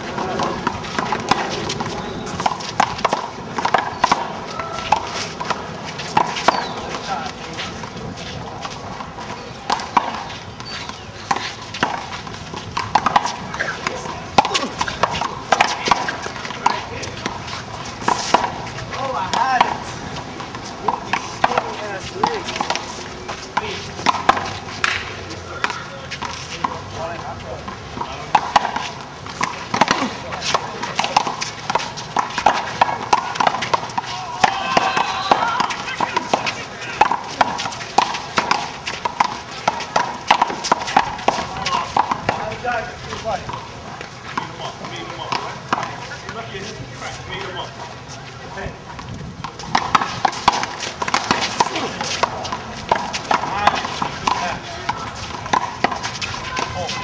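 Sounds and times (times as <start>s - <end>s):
sneaker footsteps and scuffs: 0.0s - 28.2s
players' voices: 0.0s - 57.0s.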